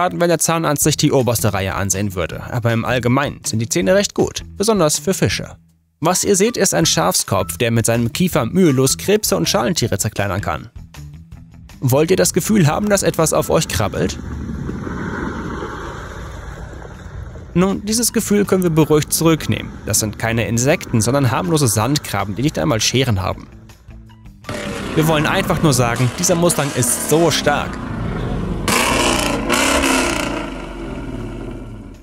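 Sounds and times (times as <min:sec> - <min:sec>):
exhaust blasts: 0:12.0 - 0:32.0
car engine revving: 0:24.4 - 0:32.0.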